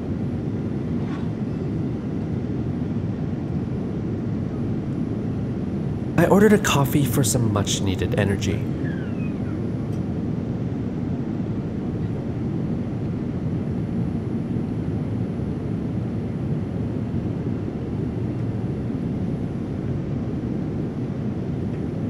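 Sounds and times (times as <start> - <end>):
airplane cabin drone: 0.0 - 22.0.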